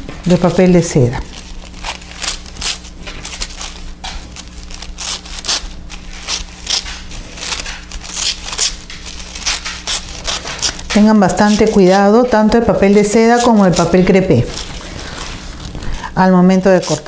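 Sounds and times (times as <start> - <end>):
steady low hum: 0.0 - 17.0
scissors snipping tissue paper: 1.2 - 17.0.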